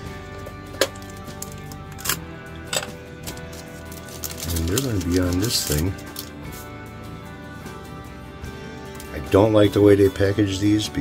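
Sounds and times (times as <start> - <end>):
soft background music: 0.0 - 11.0
paper packet crinkling: 3.2 - 6.4.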